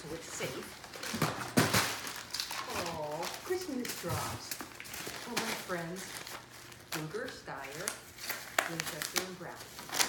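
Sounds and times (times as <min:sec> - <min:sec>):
wrapping paper crinkling: 0:00.0 - 0:10.0.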